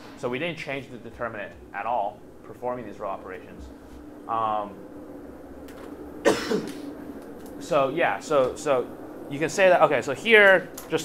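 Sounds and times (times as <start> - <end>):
faint steady hum: 0.0 - 11.0
man coughing: 6.2 - 6.8.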